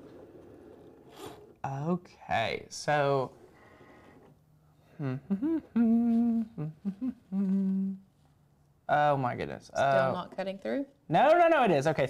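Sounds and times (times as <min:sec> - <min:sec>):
person humming a tune: 0:04.9 - 0:08.1.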